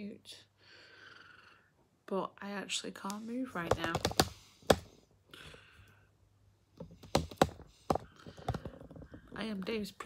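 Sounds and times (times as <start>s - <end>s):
sharp clicks and knocks: 3.6s - 4.9s, 6.8s - 9.4s
handling noise: 6.8s - 9.6s.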